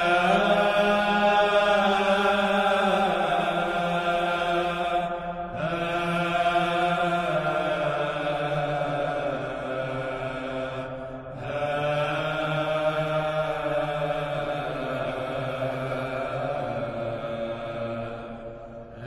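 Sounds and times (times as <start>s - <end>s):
slow chanting music: 0.0s - 19.0s.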